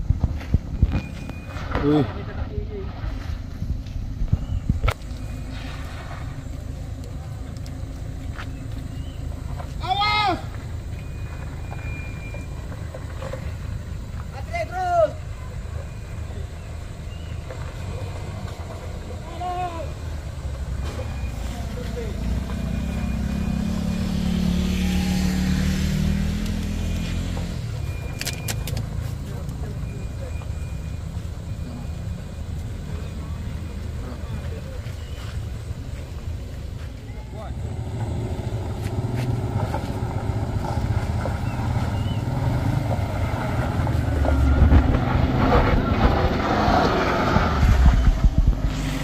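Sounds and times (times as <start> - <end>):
vehicle engines rumbling: 0.0 - 49.0
motorbike passing: 4.6 - 49.0
people shouting: 9.8 - 10.5, 19.2 - 20.0, 24.6 - 25.8.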